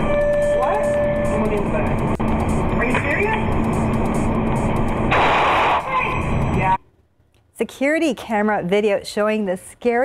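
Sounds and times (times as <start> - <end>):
burst of noise: 5.0 - 6.3.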